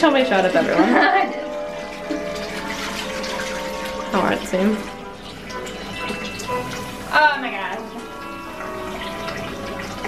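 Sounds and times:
faint music: 0:00.0 - 0:10.0
water running into bathtub: 0:00.0 - 0:10.0.

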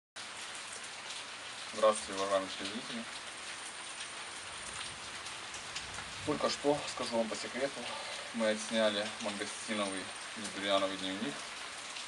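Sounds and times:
rain falling steadily: 0:00.2 - 0:12.0.

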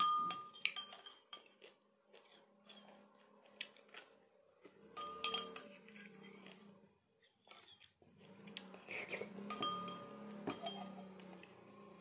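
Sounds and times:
teaspoon clinking against glass: 0:00.0 - 0:01.6, 0:04.9 - 0:05.8, 0:09.5 - 0:11.0.

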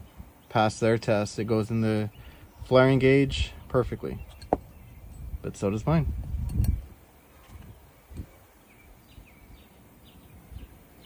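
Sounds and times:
soft bird chirps: 0:01.7 - 0:11.0
handling noise: 0:04.2 - 0:04.9.

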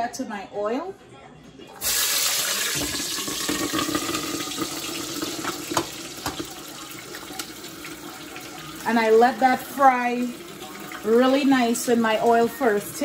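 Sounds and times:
oil popping: 0:01.8 - 0:08.0.

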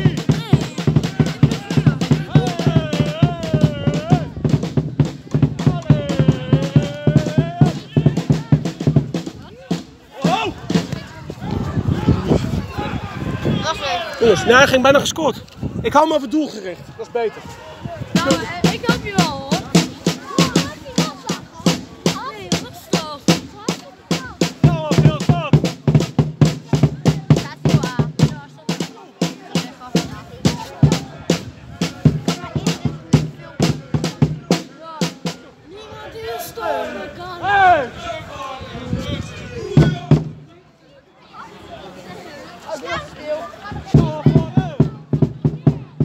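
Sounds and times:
marching drums beaten with mallets: 0:00.0 - 0:11.0, 0:18.2 - 0:35.4, 0:39.8 - 0:40.5, 0:43.7 - 0:46.0
people's voices: 0:00.0 - 0:46.0.

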